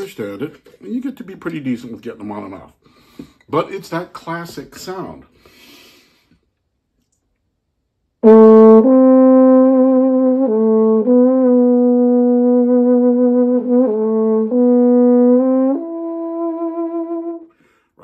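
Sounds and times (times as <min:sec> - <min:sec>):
muted trombone playing: 0:08.2 - 0:17.5.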